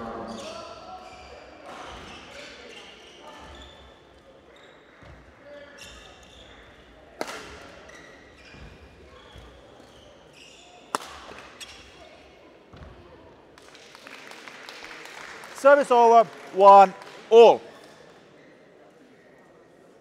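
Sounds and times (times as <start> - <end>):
murmur of voices: 0.0 - 20.0.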